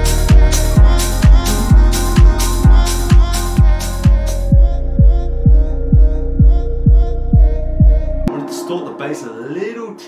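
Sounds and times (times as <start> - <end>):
sustained synth chords: 0.0 - 10.0.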